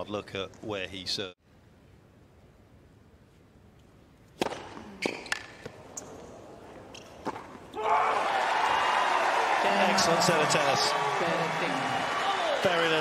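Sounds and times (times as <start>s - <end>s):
tennis ball hits and bounces: 4.4s - 5.8s, 7.0s - 7.6s
crowd cheering: 7.8s - 13.0s.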